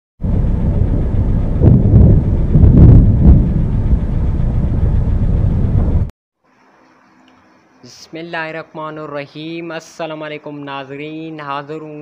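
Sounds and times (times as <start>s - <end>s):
thunder rumbling: 0.2s - 6.1s.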